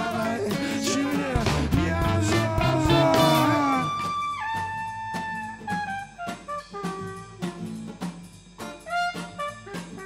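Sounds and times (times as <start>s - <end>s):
live ska-pop band: 0.0s - 10.0s
saxophone: 0.2s - 10.0s.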